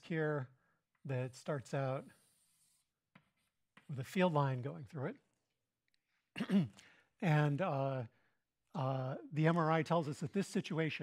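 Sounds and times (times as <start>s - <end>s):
chalk scratching on blackboard: 1.5s - 4.0s.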